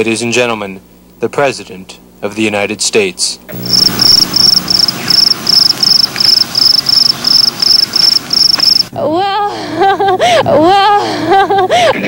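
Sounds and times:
crickets chirping: 3.5 - 8.9.

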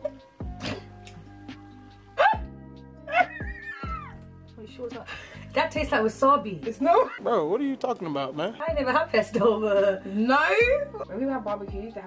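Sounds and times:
background music: 0.0 - 12.0
woman squealing whine: 3.1 - 4.2.

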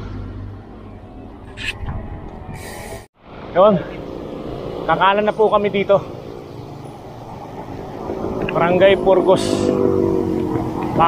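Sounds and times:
highway traffic: 0.0 - 11.0
wind: 0.0 - 11.0.

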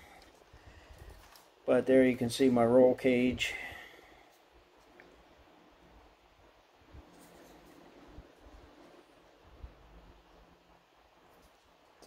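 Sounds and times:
plastic rustle: 0.2 - 1.6.

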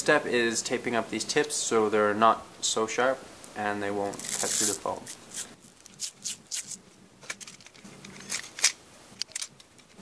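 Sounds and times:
tape peeling and wrapping: 4.1 - 6.8.

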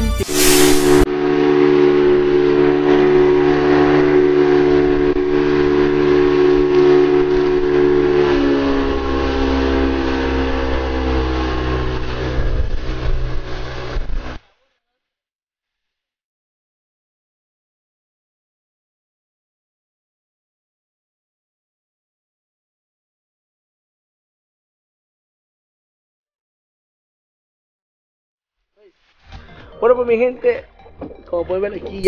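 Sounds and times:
outboard motor whine: 0.3 - 14.4.

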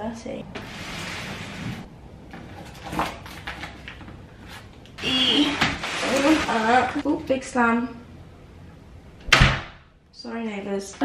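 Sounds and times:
cardboard box scraping door frame: 5.0 - 7.0.

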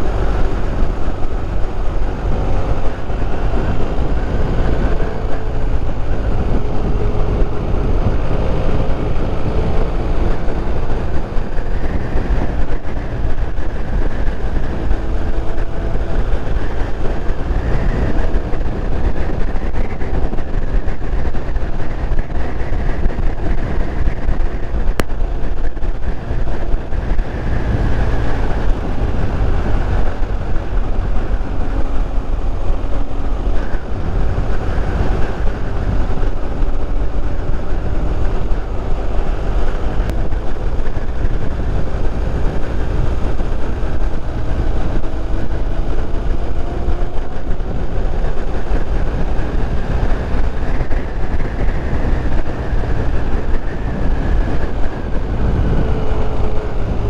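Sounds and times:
motorcycle engine at speed: 0.0 - 57.0
wind rumble on microphone: 0.0 - 57.0.

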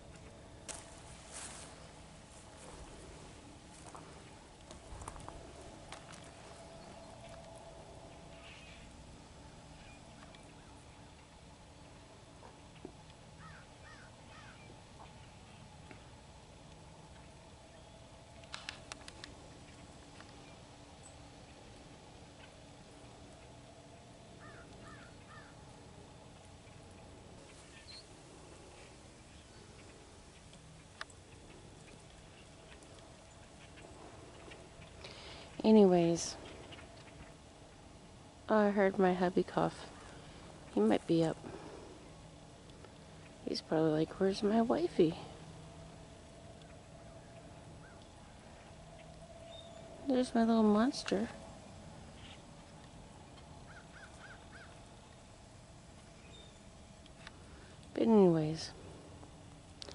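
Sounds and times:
distant birds calling: 0.0 - 59.9
soft clicks: 18.4 - 19.4.

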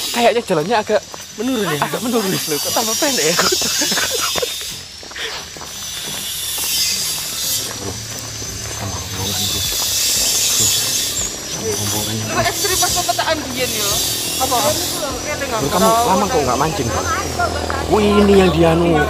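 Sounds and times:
steady hiss: 0.0 - 14.6
indistinct voices talking: 0.0 - 19.0.

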